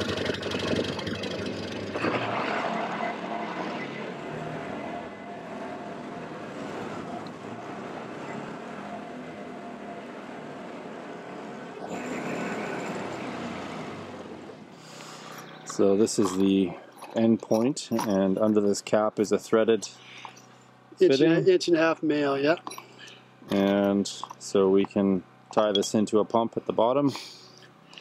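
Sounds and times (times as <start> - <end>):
utility vehicle engine running: 0.0 - 26.4.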